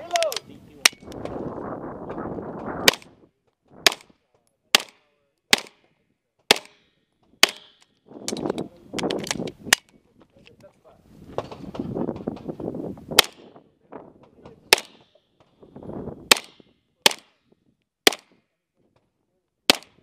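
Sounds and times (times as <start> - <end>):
carbine gunshots: 2.8 - 3.1, 3.8 - 4.1, 4.7 - 5.8, 6.5 - 6.8, 7.4 - 7.8, 14.7 - 15.2, 16.3 - 17.4, 18.0 - 18.4, 19.7 - 20.0.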